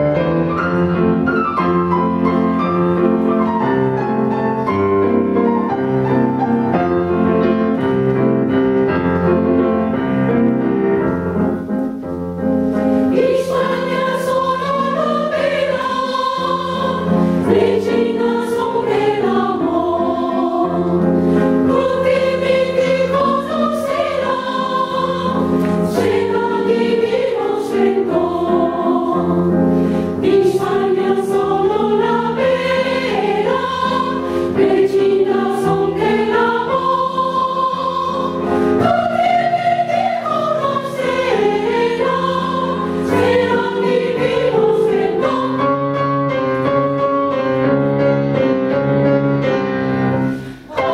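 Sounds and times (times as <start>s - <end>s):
grand piano: 0.0s - 50.9s
women's choir singing: 12.8s - 46.5s, 50.6s - 50.9s.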